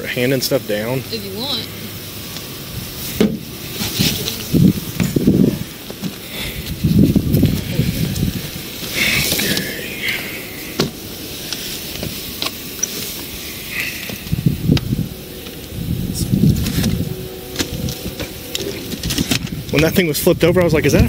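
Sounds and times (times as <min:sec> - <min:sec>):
low handling rumble: 0:00.0 - 0:21.0
items rustling and scraping: 0:02.2 - 0:20.1.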